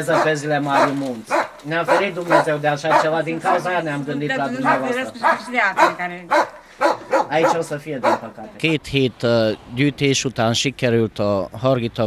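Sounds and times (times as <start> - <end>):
person talking: 0.0 - 6.2.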